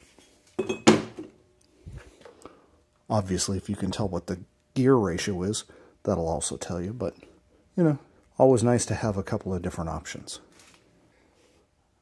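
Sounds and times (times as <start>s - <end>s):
metal part knocking on workbench: 0.6s - 1.3s.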